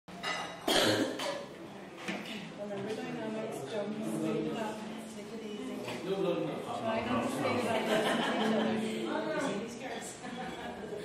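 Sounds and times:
person coughing: 0.6s - 1.5s.

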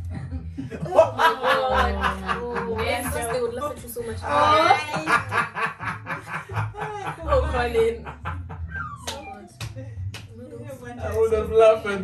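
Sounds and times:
people laughing: 0.0s - 9.4s.

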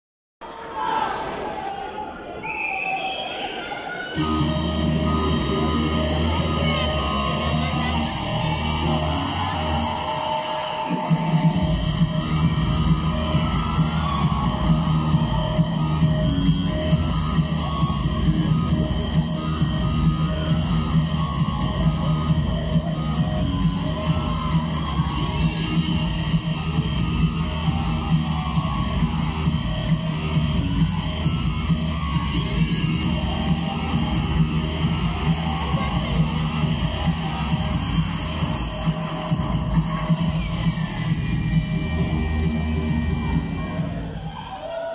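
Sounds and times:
heavy steady beat: 10.8s - 44.2s.

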